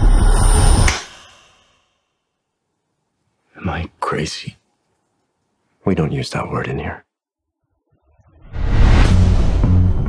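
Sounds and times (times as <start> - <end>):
bass-heavy trailer music: 0.0 - 0.9, 8.2 - 10.0.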